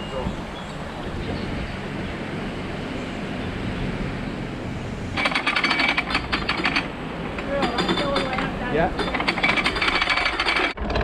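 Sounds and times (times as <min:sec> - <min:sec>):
boat engine rumbling: 0:00.0 - 0:11.0
rapid clicking: 0:05.2 - 0:11.0.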